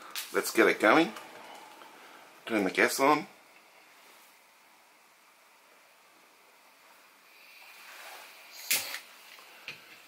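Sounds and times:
gas hissing from burner: 6.8 - 10.0.

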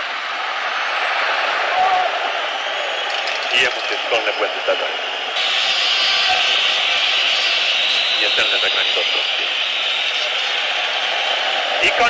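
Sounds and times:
stadium crowd roar: 0.0 - 12.0.

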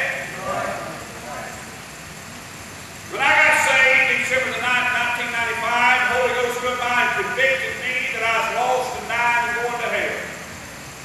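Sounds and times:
man preaching: 0.0 - 1.6, 3.1 - 10.4.

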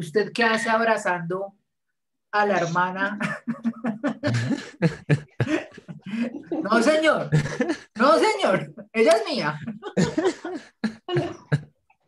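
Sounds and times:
man laughing: 3.2 - 8.0, 9.6 - 11.7.

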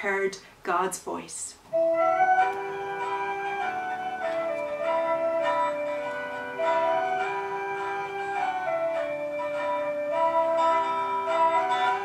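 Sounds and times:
instrumental hymn chords: 1.6 - 12.0.

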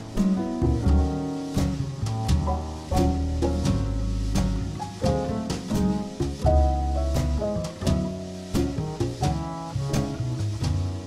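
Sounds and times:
drum kit and cymbal hits: 0.0 - 11.0
jazz chords: 0.0 - 11.0
low bass line: 0.0 - 11.0.

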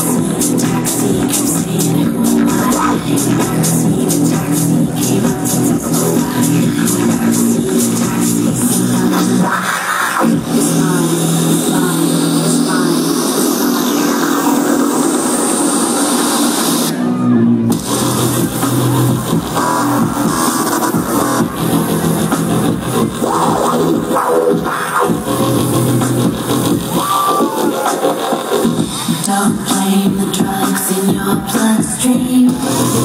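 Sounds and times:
loud electronic dance music: 0.0 - 33.0.

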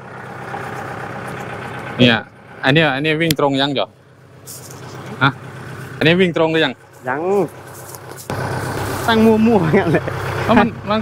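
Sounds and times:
tractor diesel engine idling: 0.0 - 11.0.

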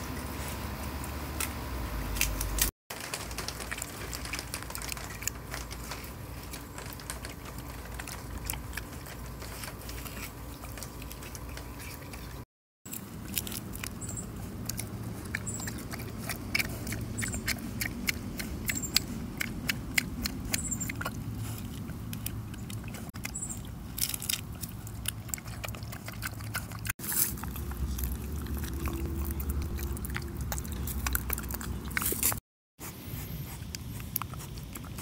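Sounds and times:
pig chewing food: 0.1 - 35.0
low rumble: 27.1 - 32.4.

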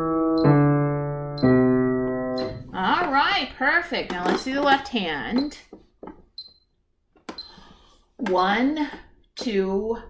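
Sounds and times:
piano playing scale notes: 0.0 - 3.5
metronome click: 0.3 - 0.7, 1.3 - 2.7
person speaking: 2.4 - 5.8.

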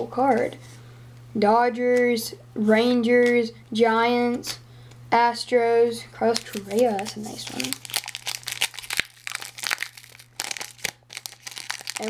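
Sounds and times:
trading cards rustling: 6.2 - 12.0
wrapper crinkling: 6.3 - 12.0.

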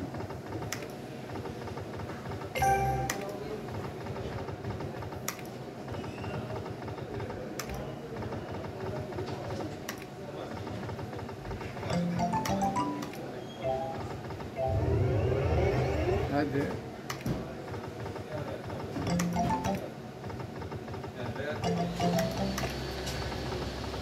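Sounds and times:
electronic jingle tones: 2.6 - 3.4, 11.9 - 15.2, 19.1 - 20.0, 21.6 - 23.0
slot machine clicks: 2.6 - 3.6, 11.9 - 14.7, 19.0 - 20.0, 21.6 - 23.0.

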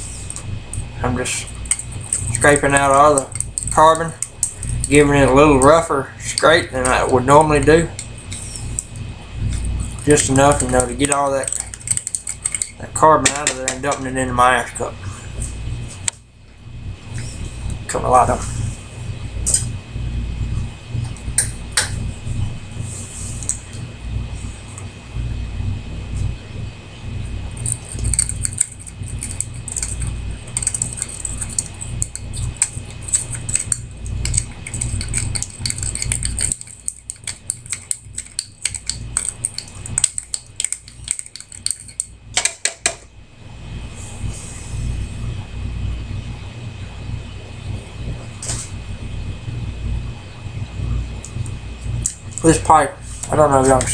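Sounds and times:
metal tool scraping pipe bowl: 7.9 - 8.8, 27.7 - 42.1.

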